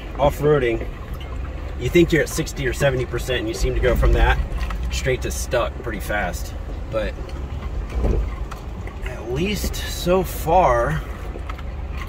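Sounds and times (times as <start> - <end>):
engine rumbling under load: 0.0 - 12.0.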